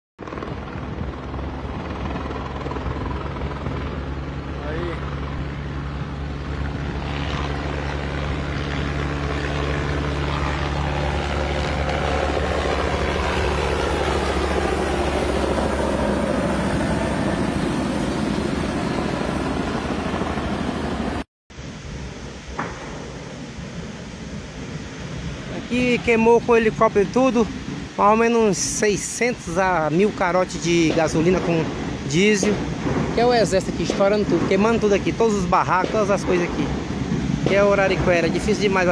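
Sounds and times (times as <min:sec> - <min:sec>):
helicopter rotor: 0:00.2 - 0:38.9
outdoor noise: 0:00.2 - 0:38.9.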